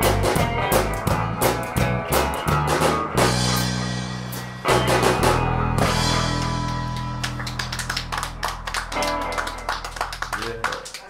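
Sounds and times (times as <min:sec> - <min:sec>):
audience clapping: 0:06.2 - 0:11.0.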